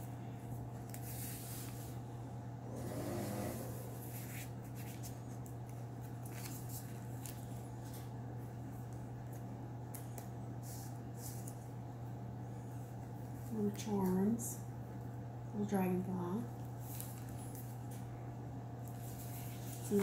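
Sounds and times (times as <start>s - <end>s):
steady low hum: 0.0s - 20.0s
paper pages rustling: 0.7s - 2.0s, 4.0s - 8.1s, 16.8s - 17.8s, 18.8s - 20.0s.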